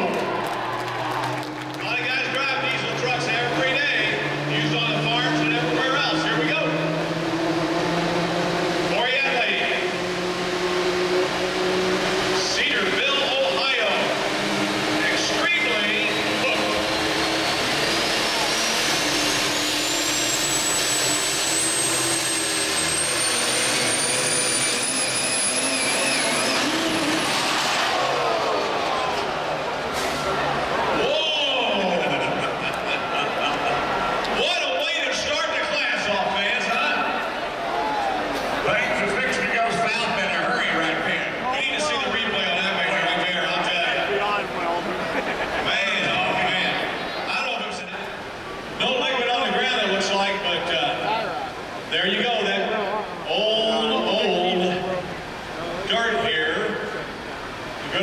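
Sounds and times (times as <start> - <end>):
diesel engine under load: 0.0 - 58.0
high turbo whine: 0.0 - 58.0.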